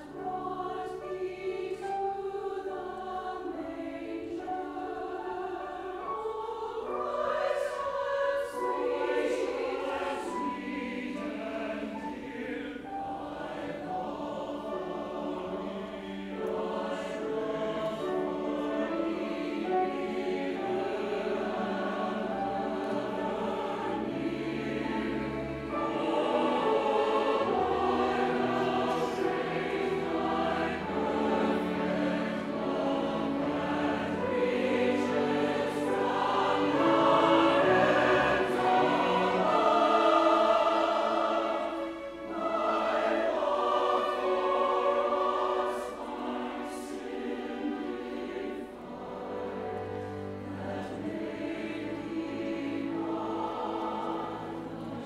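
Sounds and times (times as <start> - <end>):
choir singing: 0.0 - 55.0
string orchestra: 0.0 - 55.0.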